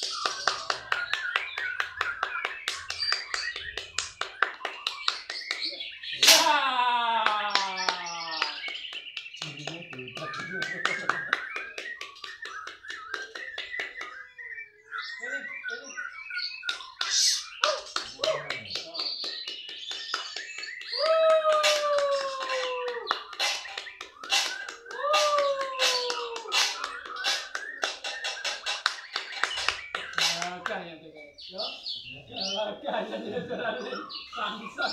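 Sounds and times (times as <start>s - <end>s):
songbirds singing and calling: 0.0s - 34.9s
bird falling calls: 19.2s - 30.6s.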